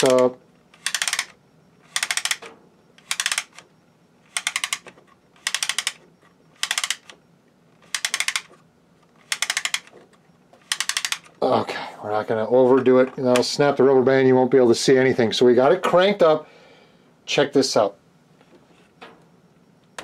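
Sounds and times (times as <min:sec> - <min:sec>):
wooden crank rapid clicking: 0:04.3 - 0:06.0, 0:07.8 - 0:08.5, 0:09.2 - 0:09.9, 0:10.6 - 0:11.3.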